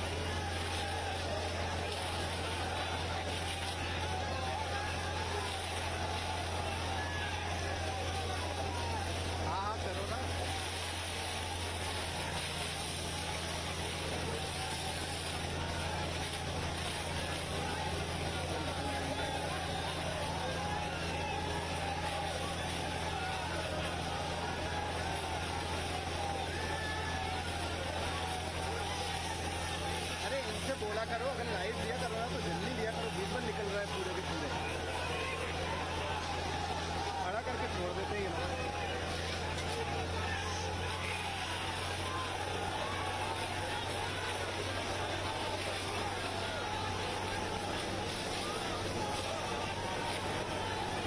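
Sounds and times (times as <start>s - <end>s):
people shouting: 0.0s - 51.0s
truck engine and pump hum: 0.0s - 51.0s.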